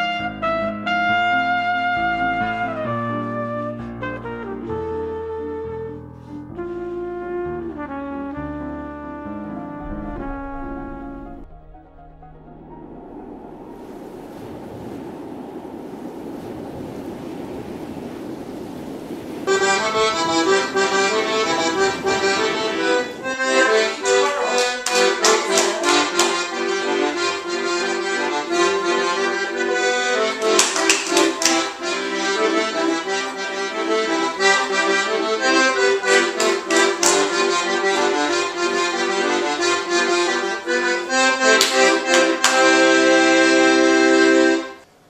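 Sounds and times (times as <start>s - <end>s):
ocean waves breaking: 9.6s - 44.5s
instrumental music with steady beat: 24.7s - 44.7s.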